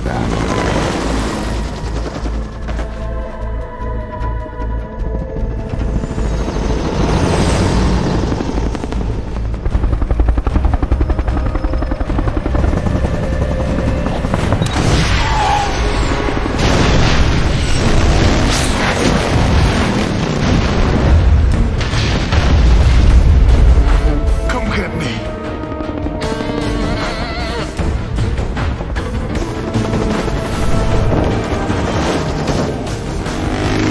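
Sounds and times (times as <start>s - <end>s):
dramatic music score: 0.0s - 33.9s
heavy booms and explosion: 16.5s - 23.8s.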